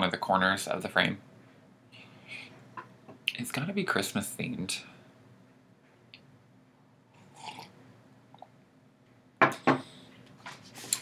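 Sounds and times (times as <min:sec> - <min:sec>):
person slurping from a mug: 0:07.2 - 0:07.7.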